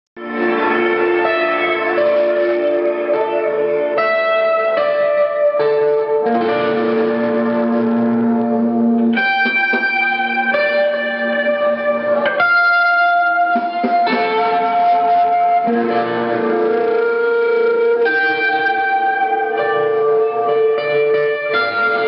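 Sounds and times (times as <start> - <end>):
clean electric guitar chords: 0.2 - 22.0.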